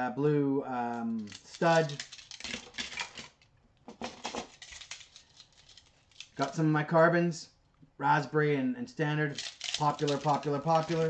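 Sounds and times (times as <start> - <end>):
plastic clicks and rattles: 1.1 - 6.5, 9.3 - 11.0.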